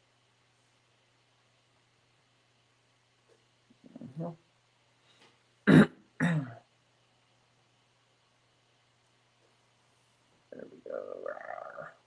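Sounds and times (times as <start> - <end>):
man clearing his throat: 5.7 - 6.6.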